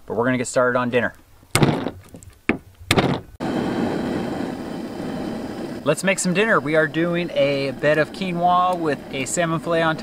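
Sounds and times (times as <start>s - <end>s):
short thunks: 1.5s - 3.4s
camp stove burner hissing: 3.0s - 10.0s.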